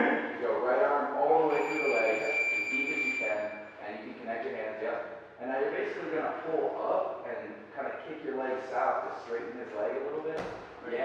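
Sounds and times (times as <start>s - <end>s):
people talking: 0.0s - 11.0s
long electronic beep: 1.5s - 3.7s.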